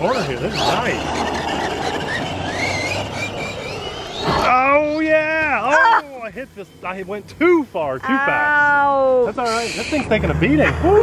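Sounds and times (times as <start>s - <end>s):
electric motor whining: 0.0s - 5.1s
tyre and track noise: 0.0s - 5.5s.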